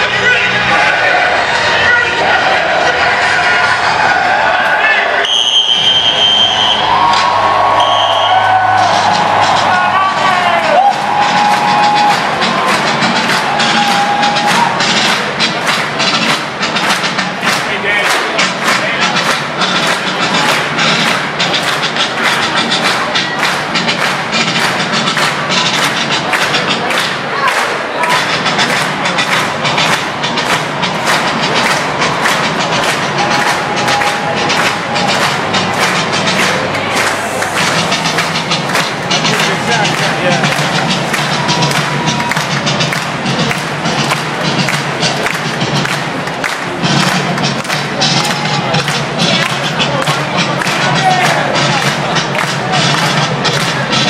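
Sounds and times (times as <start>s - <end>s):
crowd noise: 0.0s - 54.0s.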